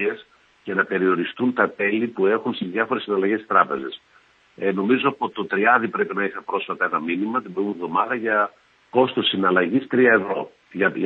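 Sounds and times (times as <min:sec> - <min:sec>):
man talking: 0:00.0 - 0:04.0, 0:04.6 - 0:11.0.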